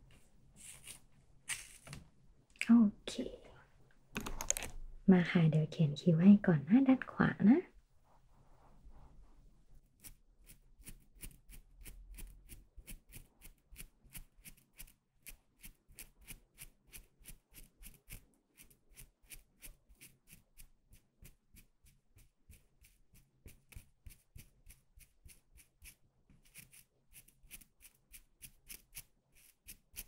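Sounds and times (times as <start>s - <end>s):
pencil scratching across lens: 8.1s - 30.0s.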